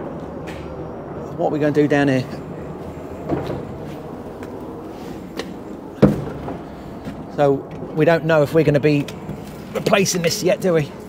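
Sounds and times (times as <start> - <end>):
low city rumble: 0.0 - 11.0.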